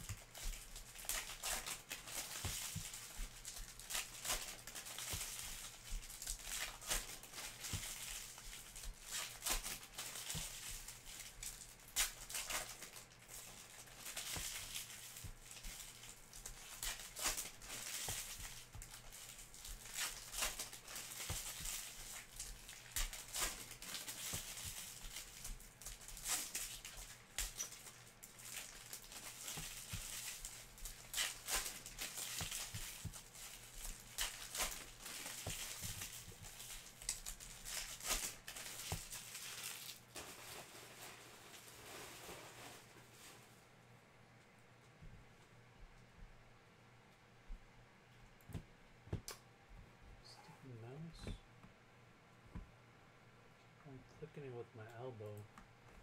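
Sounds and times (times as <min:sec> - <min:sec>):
foil wrappers tearing and crinkling: 0:00.0 - 0:43.5.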